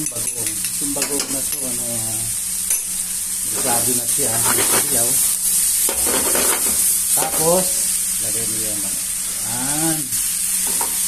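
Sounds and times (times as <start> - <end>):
onions sizzling in frying pan: 0.0 - 11.0.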